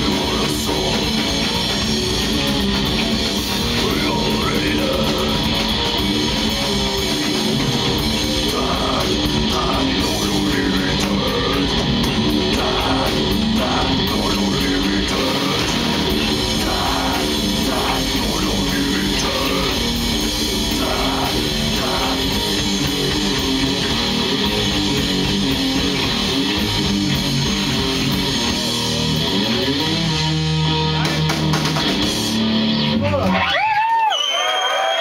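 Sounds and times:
live death metal band: 0.0s - 35.0s.

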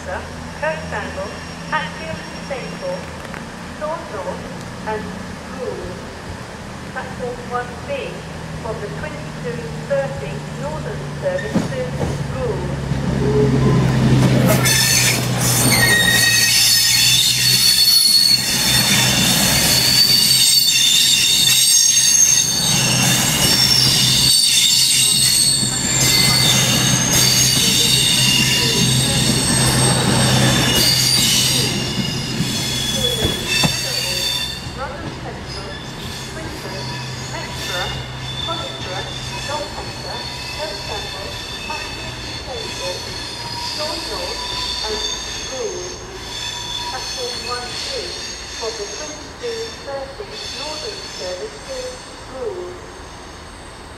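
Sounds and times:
diesel train engines humming: 0.0s - 53.9s
train wheels squealing: 1.2s - 3.1s, 13.6s - 34.9s, 35.5s - 52.3s.

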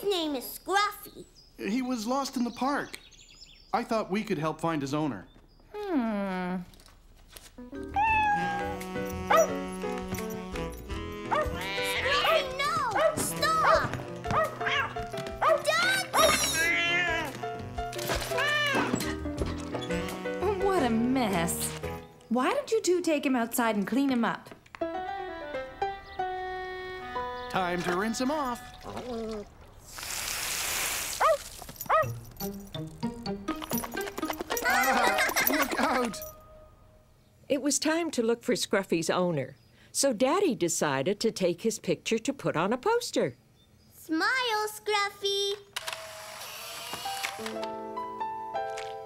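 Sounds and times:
cartoon music: 7.7s - 21.5s, 32.7s - 36.7s
cartoon cat meowing and yowling: 7.9s - 8.9s, 16.2s - 17.3s, 18.4s - 18.9s
dog barking: 9.3s - 9.6s, 11.3s - 11.6s, 12.2s - 16.3s, 31.2s - 32.2s
light plucked music notes: 24.8s - 29.4s
garden hose spray hiss: 29.8s - 31.7s.

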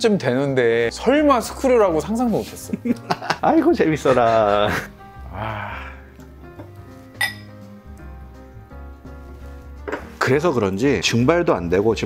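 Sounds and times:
background music: 0.0s - 12.0s
glass clink: 7.2s - 7.6s.

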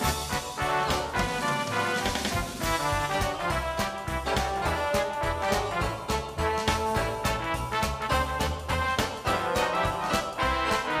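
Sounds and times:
drum beat: 0.0s - 11.0s.

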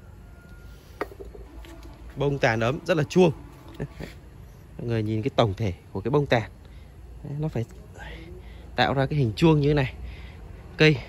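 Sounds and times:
drink can set down on wood: 1.0s - 1.5s.

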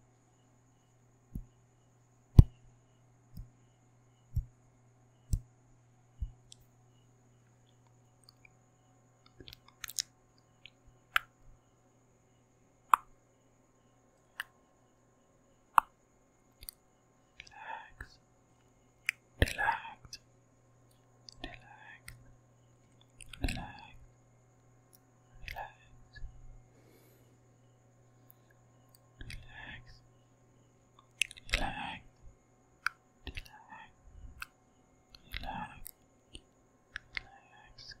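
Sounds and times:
wet mouth clicks and smacks: 9.2s - 11.3s, 23.0s - 23.7s, 28.9s - 29.5s, 31.0s - 31.7s, 32.8s - 33.5s, 34.4s - 37.3s
person whispering: 17.4s - 18.2s, 19.4s - 20.2s, 21.3s - 22.2s, 23.2s - 24.0s, 25.4s - 26.0s, 29.2s - 30.1s, 31.3s - 32.1s, 33.3s - 34.0s, 35.2s - 35.9s, 37.1s - 38.0s.

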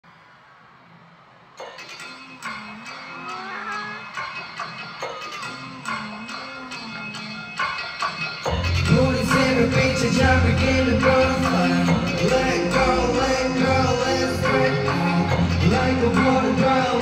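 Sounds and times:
song over arena sound system: 1.6s - 17.0s
heavy beat over bass line: 8.0s - 17.0s.

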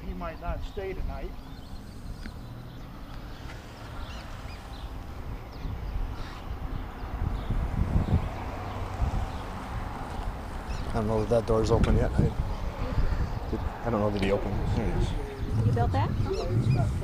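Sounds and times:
wind rumble on microphone: 0.3s - 17.0s.

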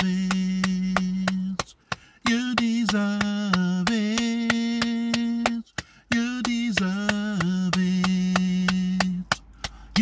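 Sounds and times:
hand claps in steady beat: 0.0s - 10.0s.

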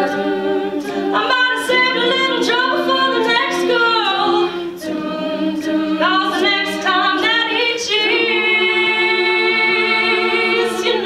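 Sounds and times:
backing vocal harmonies: 0.0s - 11.0s.

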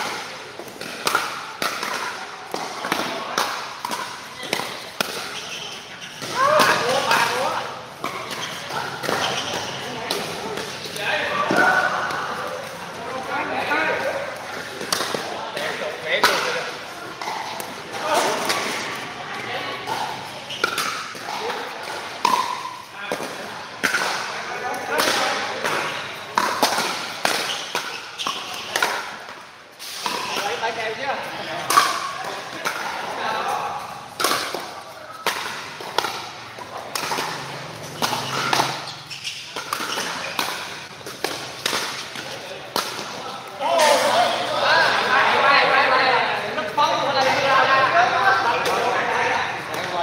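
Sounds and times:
ball bouncing on court: 0.0s - 12.3s, 19.8s - 24.4s, 25.0s - 30.7s, 34.2s - 43.2s
background chatter: 0.0s - 50.0s.

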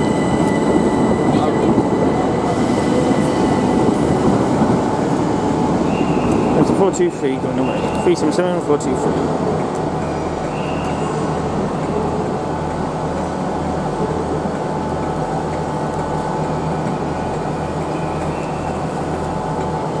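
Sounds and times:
electric train humming: 0.0s - 20.0s.

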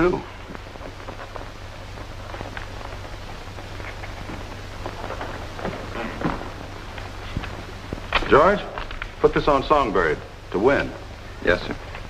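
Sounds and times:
film soundtrack hiss and crackle: 0.0s - 12.0s
low hum: 0.0s - 12.0s.

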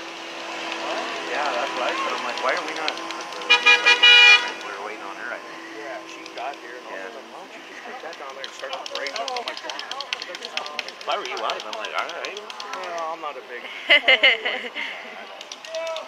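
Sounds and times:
vehicle horn honking: 3.4s - 4.9s.

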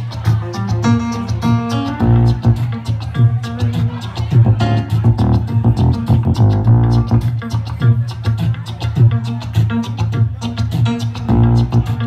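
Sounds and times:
keyboard: 0.0s - 8.1s, 10.2s - 12.0s
bass line: 0.0s - 12.0s
electric guitar: 0.0s - 12.0s
drum beat: 4.2s - 7.4s.

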